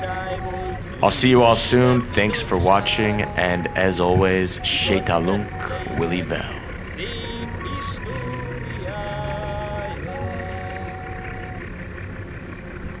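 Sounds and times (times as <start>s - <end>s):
slow tune of held notes: 0.0s - 12.1s
ferry engine rumble: 0.0s - 13.0s.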